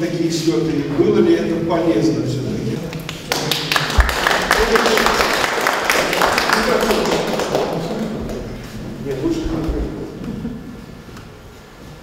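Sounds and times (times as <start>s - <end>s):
audience applause: 3.0s - 8.8s.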